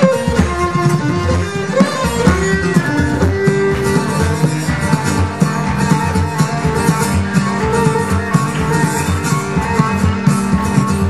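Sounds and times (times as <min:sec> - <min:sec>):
fiddle melody notes: 0:00.0 - 0:11.0
plucked acoustic guitar: 0:00.0 - 0:11.0
steady pulsing beat: 0:00.0 - 0:11.0.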